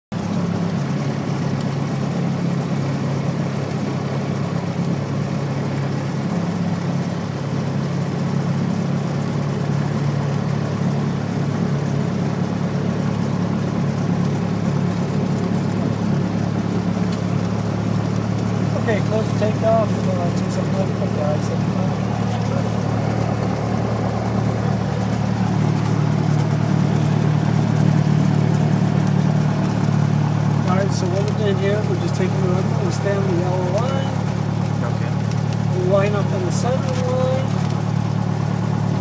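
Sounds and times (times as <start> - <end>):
light airplane engine droning: 0.1 - 39.0.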